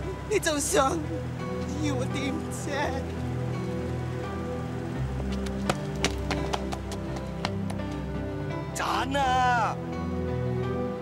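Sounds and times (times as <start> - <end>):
soft sustained drama music: 0.0 - 11.0.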